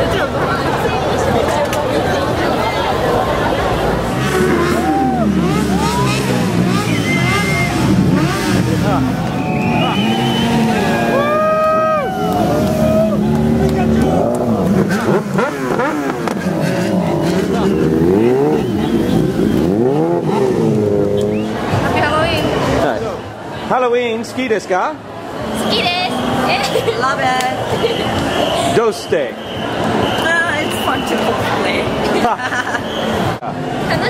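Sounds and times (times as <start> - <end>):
crowd voices: 0.0 - 34.0
motorcycle engines revving: 0.0 - 34.0.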